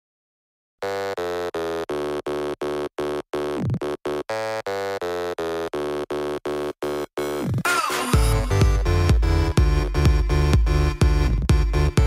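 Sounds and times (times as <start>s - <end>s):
pulsing synthesizer chord: 5.7s - 12.0s.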